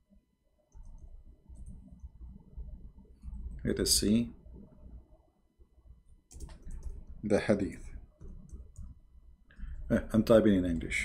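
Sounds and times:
computer keyboard keys clicking: 0.7 - 1.8, 6.3 - 7.1, 8.2 - 9.0.

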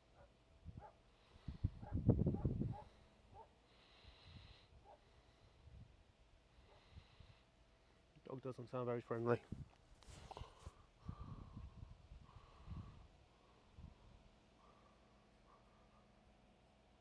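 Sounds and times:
dog barking: 1.8 - 3.6, 15.4 - 15.8.

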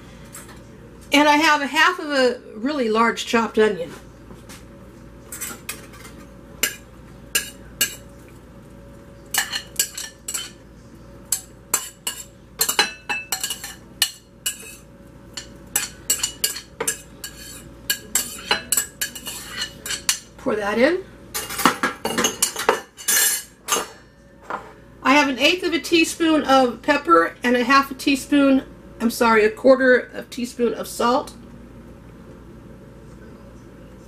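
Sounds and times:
metal spoon scraping ceramic bowl: 15.4 - 20.2.

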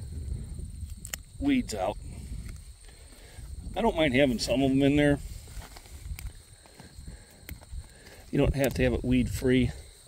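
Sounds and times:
weeds rustling and snapping: 0.8 - 1.4, 5.3 - 8.9.

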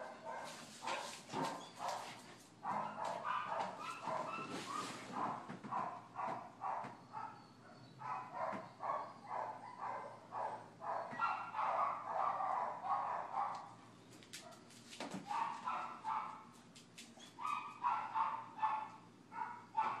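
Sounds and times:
dog barking: 0.0 - 13.8, 15.2 - 16.5, 17.4 - 20.0.

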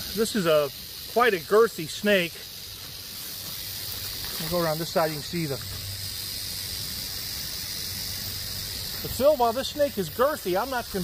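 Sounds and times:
rattlesnake rattling: 0.0 - 11.0.

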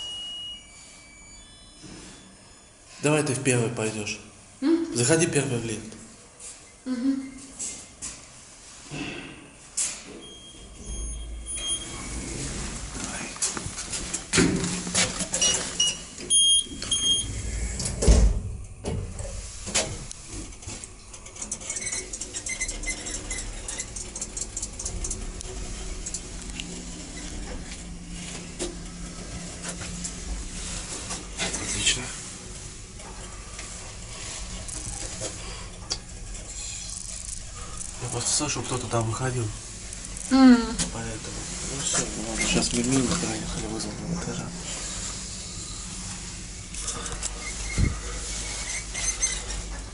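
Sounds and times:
lift car low hum: 10.0 - 49.9.

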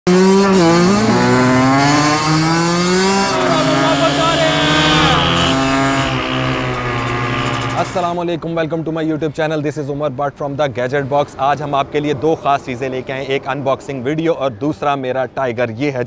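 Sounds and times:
dirt bike engine revving: 0.1 - 8.2.

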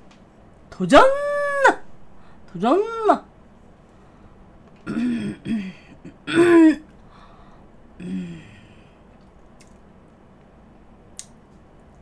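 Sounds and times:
woman's wordless vocal noises: 8.0 - 9.0.

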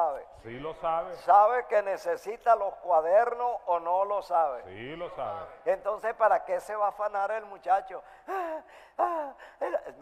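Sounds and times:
person making breathy vocal sounds: 8.3 - 10.0.

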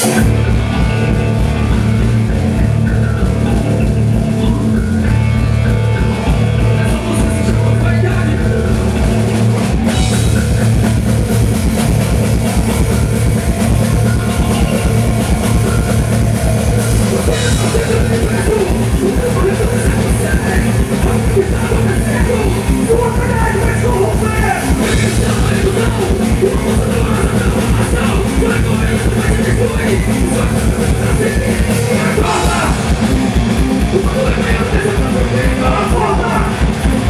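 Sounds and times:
bass guitar: 0.0 - 37.0
electric guitar: 0.0 - 37.0
rock band playing loudly: 0.0 - 37.0.

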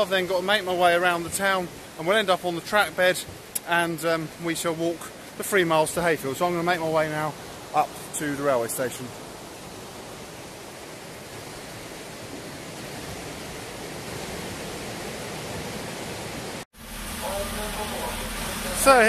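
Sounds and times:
river water rushing: 0.0 - 19.0
diesel train idling: 16.8 - 19.0.

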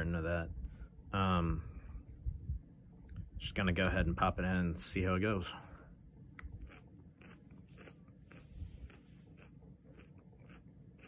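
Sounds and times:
crunching bite and chewing: 6.4 - 11.0.

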